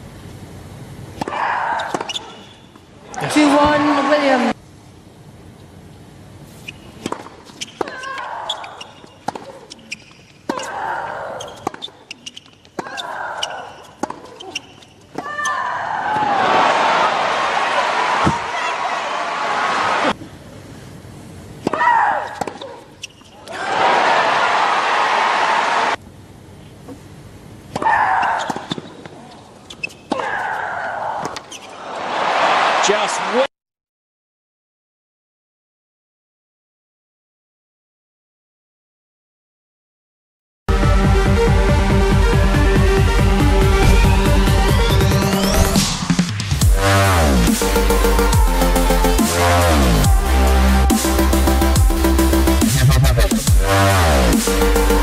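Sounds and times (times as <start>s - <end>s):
tennis racquet strikes: 1.2s - 2.5s, 7.0s - 10.8s, 11.6s - 13.0s, 13.9s - 14.5s, 21.6s - 22.7s
tennis ball bounces: 7.0s - 10.8s, 13.9s - 15.3s
crowd applause and cheering: 16.1s - 20.2s, 23.6s - 26.0s, 43.3s - 55.0s.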